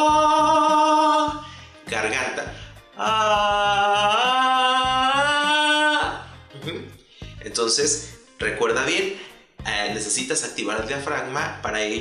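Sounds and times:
man singing sustained vowel: 0.0s - 1.4s, 2.9s - 6.3s.

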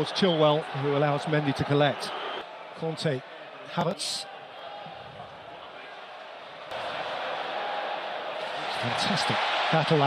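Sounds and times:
stadium crowd hum: 0.0s - 10.0s.

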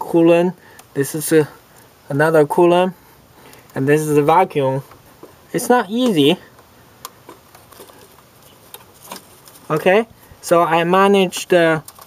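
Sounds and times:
hands handling parts clicking: 6.0s - 9.9s, 11.2s - 12.0s.

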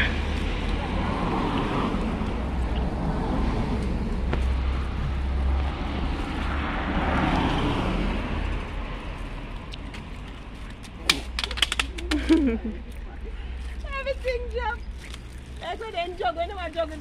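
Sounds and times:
steady low rumble: 0.0s - 11.4s
cars passing: 0.0s - 17.0s.

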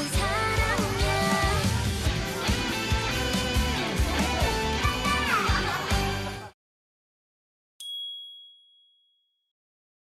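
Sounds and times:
bright electronic ding: 7.8s - 9.2s.

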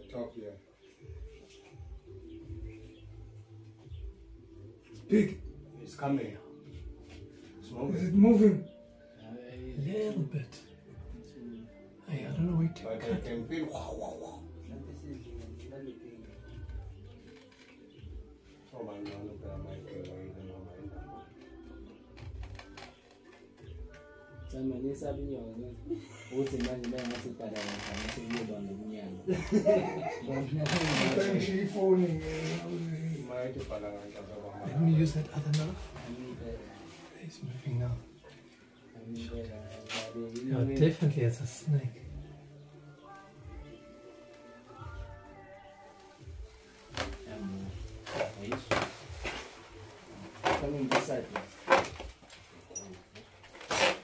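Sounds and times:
faint music: 0.0s - 54.0s
people talking: 7.7s - 8.7s, 9.4s - 10.7s, 11.4s - 16.6s, 18.8s - 20.9s, 24.5s - 38.1s, 39.0s - 42.0s, 47.0s - 48.9s.

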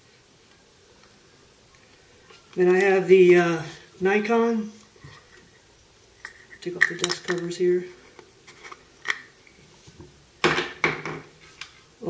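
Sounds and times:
plastic lens covers clacking: 6.2s - 9.3s.

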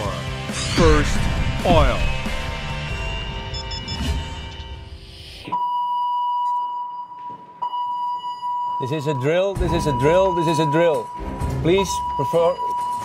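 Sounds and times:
music: 0.0s - 5.4s, 9.6s - 13.0s
high-pitched alarm tone: 1.7s - 13.0s.

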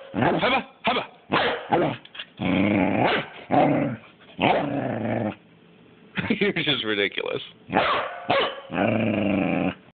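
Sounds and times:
dog growling barks: 0.0s - 5.4s, 7.7s - 9.9s.

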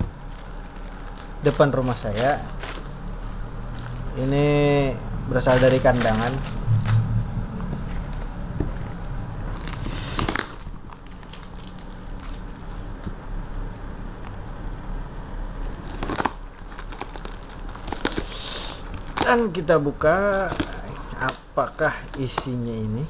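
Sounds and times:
cardboard tearing: 0.0s - 4.8s, 5.4s - 7.0s, 9.5s - 12.7s, 15.7s - 23.0s
plastic wrap crinkling: 0.0s - 7.1s, 9.5s - 14.5s, 15.6s - 23.0s.

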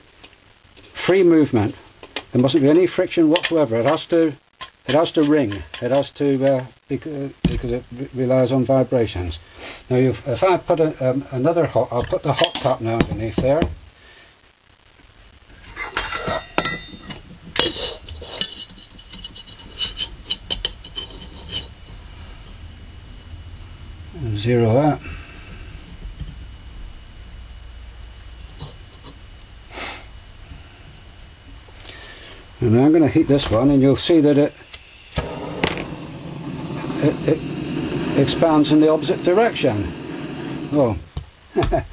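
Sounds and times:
hiss of burning gas: 9.4s - 10.0s, 29.7s - 30.9s, 34.5s - 41.1s.

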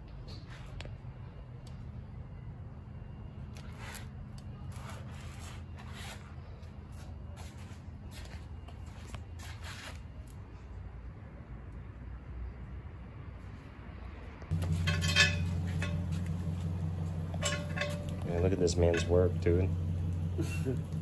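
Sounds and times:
steady low hum: 14.5s - 21.0s.

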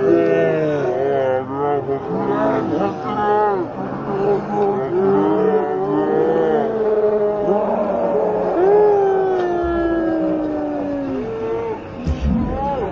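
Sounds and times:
men shouting: 0.0s - 12.9s.

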